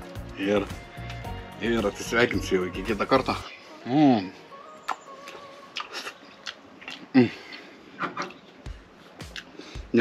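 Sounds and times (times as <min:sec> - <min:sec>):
man chewing crispy chicken: 0:05.2 - 0:09.9
closed-mouth mm of enjoyment: 0:05.8 - 0:07.7.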